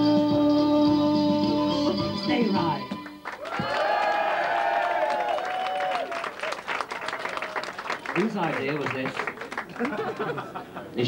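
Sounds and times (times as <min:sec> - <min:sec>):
audience clapping: 0:03.0 - 0:10.7.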